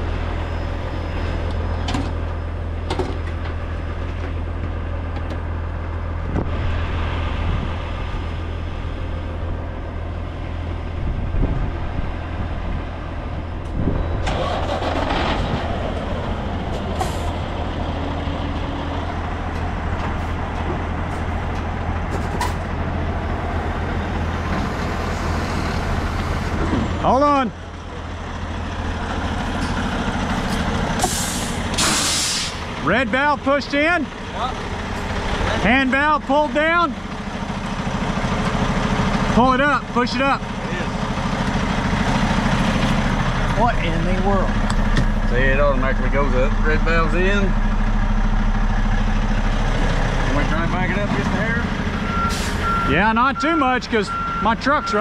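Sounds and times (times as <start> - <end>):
diesel truck engine drone: 0.0 - 55.0
air brake: 17.0 - 17.4, 31.0 - 32.6, 52.3 - 52.6.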